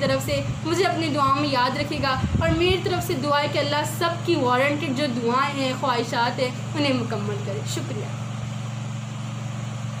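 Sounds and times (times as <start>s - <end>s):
constant background hiss: 0.0s - 10.0s
steady low hum: 0.0s - 10.0s.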